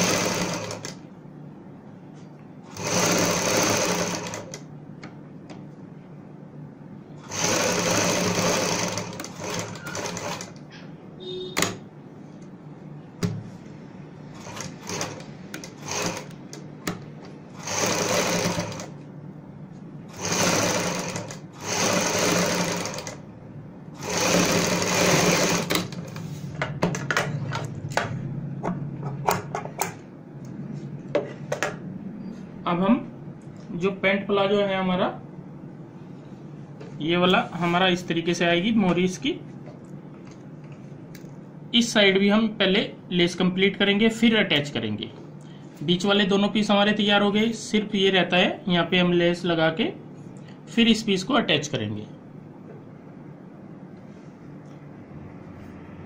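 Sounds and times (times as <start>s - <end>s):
sewing machine stitching: 0.0s - 1.0s, 2.7s - 4.6s, 7.2s - 10.6s, 14.3s - 16.6s, 17.5s - 19.0s, 20.1s - 23.2s, 24.0s - 26.2s.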